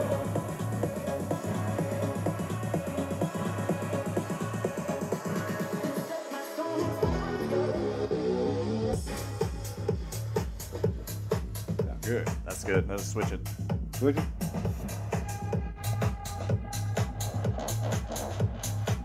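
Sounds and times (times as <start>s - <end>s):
heavy bass beat: 0.0s - 6.1s, 6.8s - 19.0s
electronic house music through speaker: 0.0s - 19.0s
crisp hi-hats: 9.0s - 19.0s.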